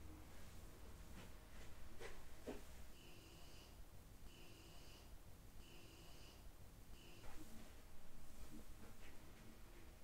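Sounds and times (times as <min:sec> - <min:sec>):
low room hum: 0:00.0 - 0:10.0
soft scratchy handling strokes: 0:07.2 - 0:10.0.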